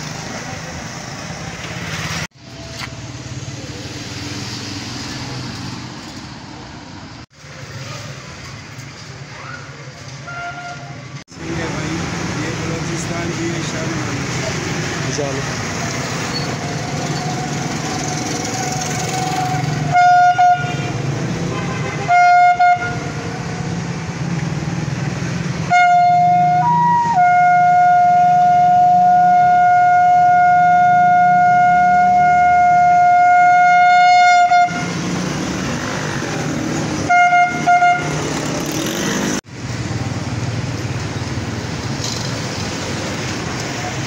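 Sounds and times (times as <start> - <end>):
low street noise: 0.0 - 44.0
horn trumpet blasts: 18.5 - 23.2, 25.6 - 35.0, 37.0 - 38.2.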